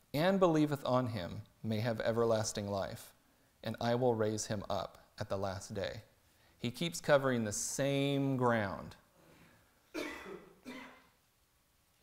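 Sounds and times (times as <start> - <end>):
man coughing: 9.9 - 11.2.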